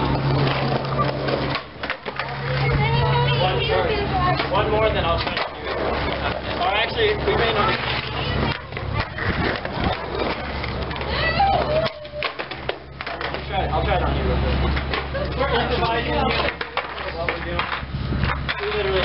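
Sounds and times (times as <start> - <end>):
skateboards clacking: 0.0 - 19.0
steady low hum: 0.0 - 19.0
people talking: 2.1 - 19.0.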